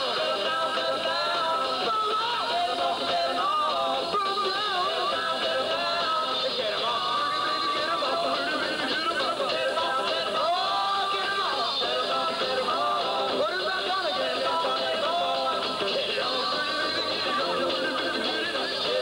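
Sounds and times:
drums: 0.0s - 19.0s
electric guitar: 0.0s - 19.0s
person singing: 0.0s - 19.0s.

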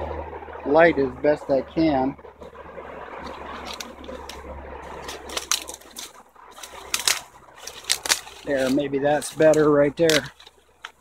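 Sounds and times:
bee swarm buzzing: 0.0s - 11.0s
branches brushing: 2.4s - 11.0s
footsteps in undergrowth: 3.2s - 11.0s.

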